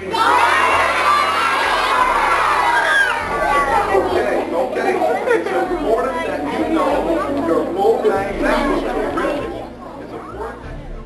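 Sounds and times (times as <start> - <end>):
background music: 0.0 - 11.0
children chattering: 0.0 - 11.0.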